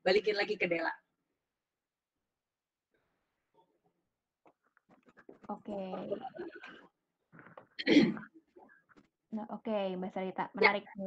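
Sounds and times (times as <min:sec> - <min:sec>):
faint murmurs: 0:05.1 - 0:08.7.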